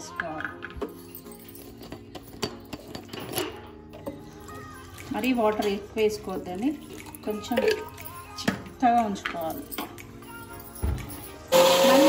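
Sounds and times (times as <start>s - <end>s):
mixer grinder motor running: 11.5s - 12.0s.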